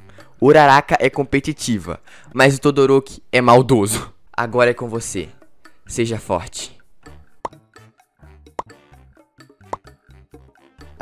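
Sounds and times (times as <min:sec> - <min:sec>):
music with repeated bass notes: 0:07.0 - 0:11.0.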